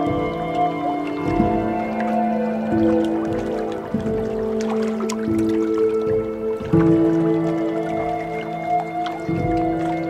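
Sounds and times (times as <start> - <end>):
tense background music: 0.0 - 10.0.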